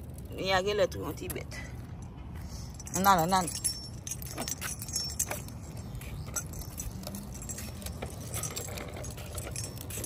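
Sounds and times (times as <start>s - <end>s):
light clicks and clinks: 1.2s - 10.0s.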